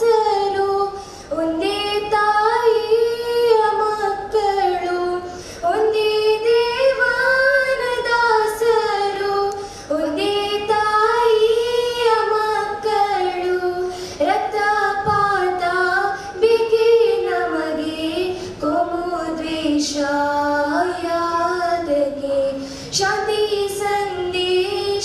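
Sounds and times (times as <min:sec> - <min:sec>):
girls singing in unison: 0:00.0 - 0:25.0.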